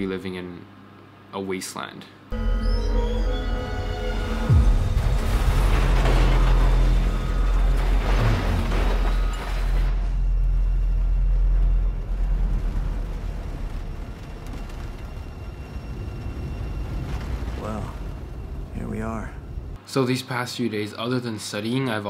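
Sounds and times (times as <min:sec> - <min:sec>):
deep rumble: 0:02.3 - 0:19.8.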